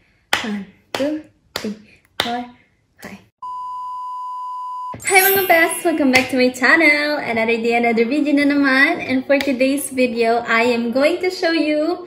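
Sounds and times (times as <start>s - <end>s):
steady electronic beep: 3.4s - 6.0s.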